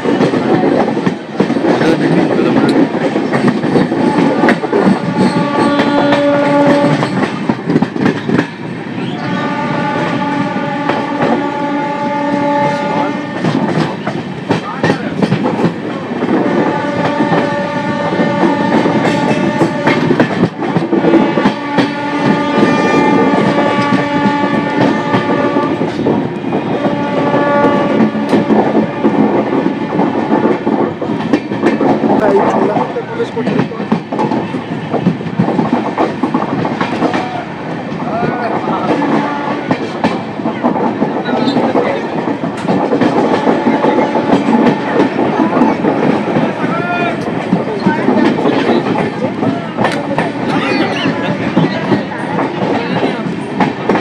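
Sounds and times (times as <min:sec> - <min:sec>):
train wheels clattering on rails: 0:00.0 - 0:54.0
train horn blasts: 0:04.0 - 0:07.3, 0:09.2 - 0:13.6, 0:16.4 - 0:20.2, 0:21.2 - 0:26.0, 0:26.6 - 0:30.0, 0:38.8 - 0:39.9, 0:43.3 - 0:45.2, 0:49.8 - 0:51.4.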